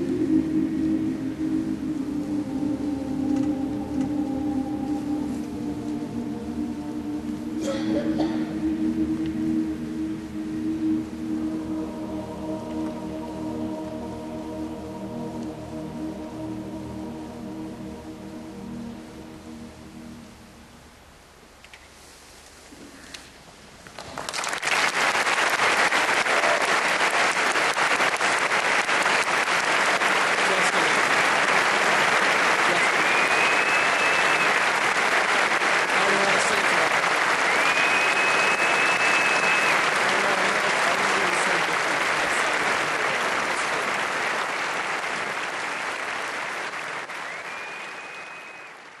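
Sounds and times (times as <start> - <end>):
audience applause: 24.0 - 49.0
high rising whistles: 32.7 - 35.2, 37.3 - 40.0, 47.1 - 48.9.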